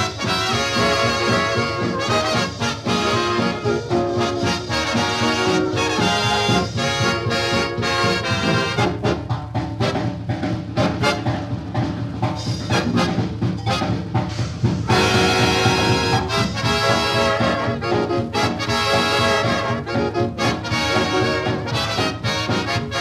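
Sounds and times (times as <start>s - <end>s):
swing big band on old record: 0.0s - 23.0s.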